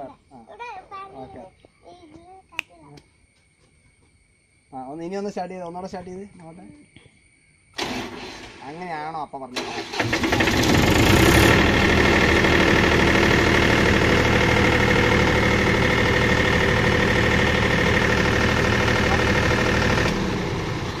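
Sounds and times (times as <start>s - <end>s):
diesel generator engine hum: 9.8s - 21.0s.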